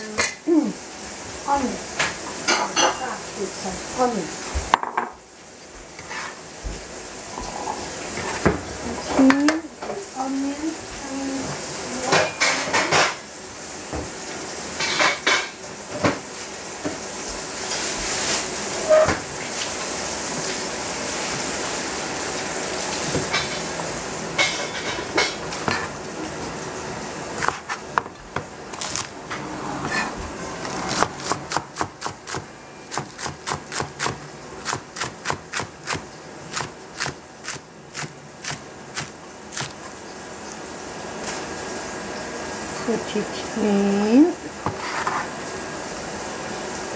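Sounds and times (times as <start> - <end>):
frying hiss: 0.0 - 46.9
pan and utensil clatter: 12.0 - 13.2, 14.8 - 16.2, 23.2 - 23.8, 24.4 - 26.0
cleaver chopping on cutting board: 27.4 - 29.0, 30.9 - 39.7.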